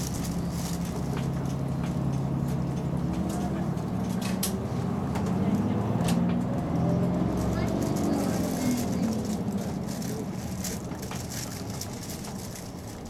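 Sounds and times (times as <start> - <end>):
bus diesel engine running: 0.0 - 13.0.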